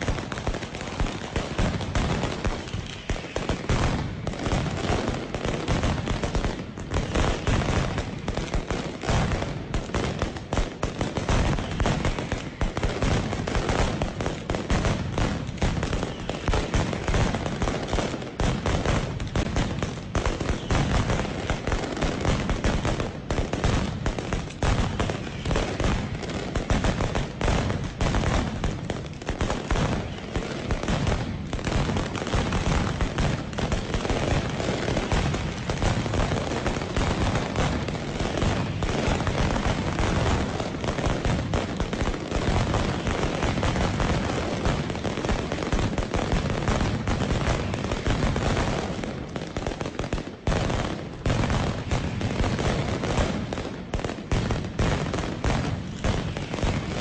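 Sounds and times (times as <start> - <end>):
firecrackers rapid bangs: 0.0 - 57.0.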